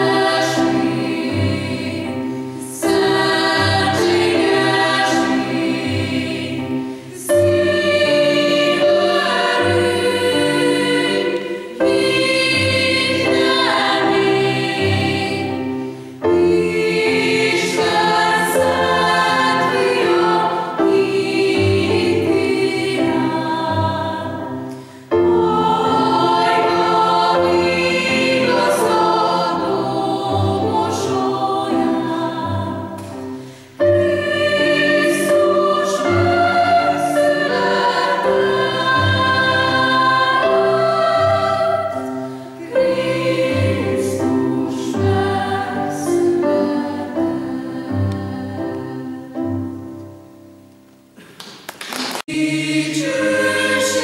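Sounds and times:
mixed choir singing: 0:00.0 - 0:50.4, 0:52.2 - 0:54.0.

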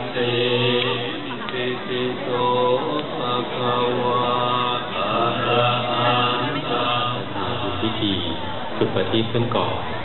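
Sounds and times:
group chanting on held tones: 0:00.0 - 0:08.0.

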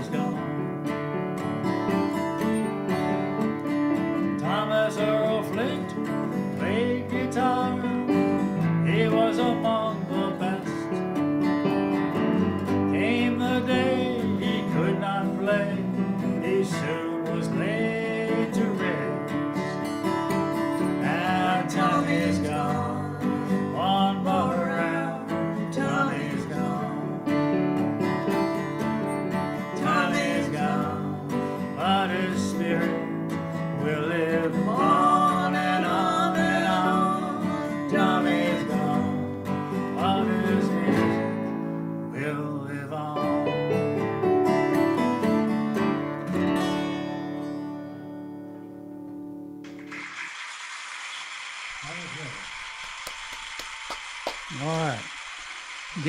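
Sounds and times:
person singing: 0:00.0 - 0:00.5, 0:04.4 - 0:11.0, 0:12.8 - 0:19.6, 0:21.0 - 0:27.5, 0:29.6 - 0:43.8
acoustic guitar: 0:00.0 - 0:50.6
steady hiss: 0:49.7 - 0:56.0.

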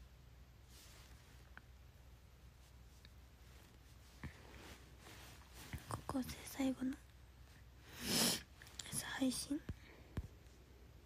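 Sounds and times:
young woman whispering: 0:05.8 - 0:07.0, 0:08.8 - 0:09.8.

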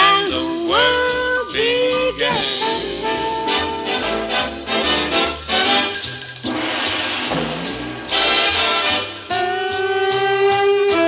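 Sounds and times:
swing band instrumental: 0:00.0 - 0:11.0
fast high rattle: 0:05.9 - 0:08.8.

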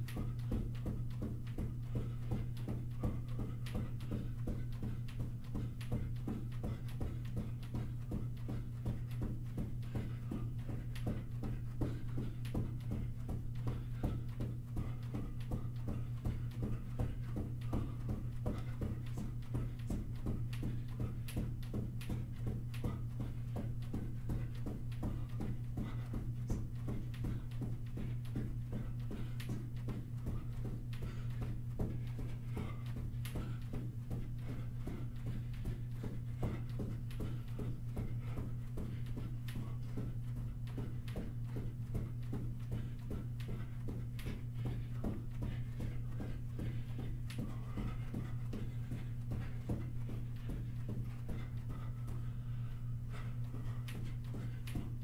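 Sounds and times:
footsteps running on carpet: 0:00.0 - 0:55.0
steady low hum: 0:00.0 - 0:55.0.

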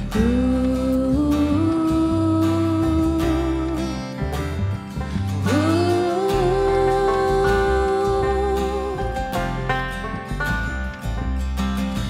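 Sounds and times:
acoustic guitar and bass: 0:00.0 - 0:12.0
woman singing long notes: 0:00.2 - 0:04.2, 0:05.4 - 0:09.4.

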